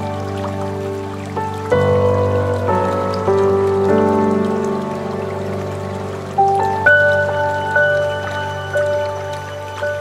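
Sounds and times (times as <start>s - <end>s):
slow ambient music: 0.0s - 10.0s
soft rain-like patter: 0.0s - 10.0s.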